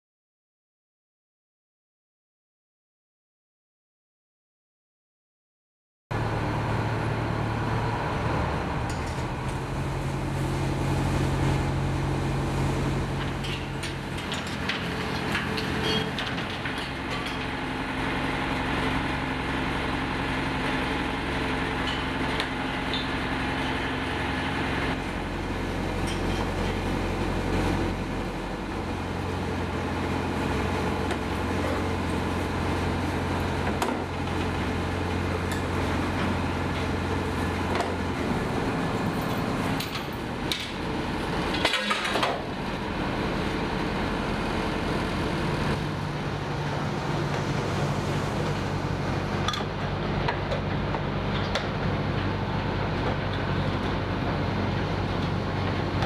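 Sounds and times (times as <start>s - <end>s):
boat engine humming: 6.2s - 56.0s.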